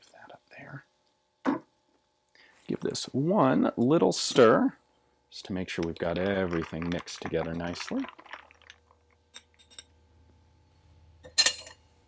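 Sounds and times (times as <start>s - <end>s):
ice rattling in glass: 5.9s - 9.0s.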